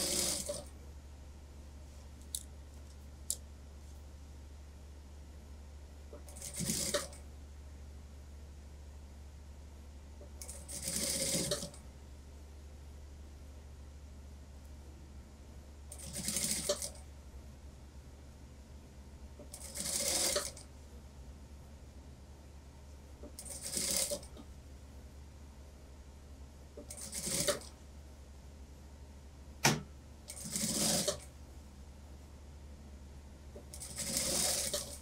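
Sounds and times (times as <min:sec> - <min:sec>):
sewing machine stitching: 0:00.0 - 0:00.7, 0:06.2 - 0:07.2, 0:10.4 - 0:11.8, 0:15.9 - 0:17.0, 0:19.4 - 0:20.6, 0:23.2 - 0:24.4, 0:26.8 - 0:27.8, 0:30.3 - 0:31.3, 0:33.6 - 0:35.0
steady low hum: 0:00.0 - 0:35.0
sharp click: 0:29.6 - 0:29.9.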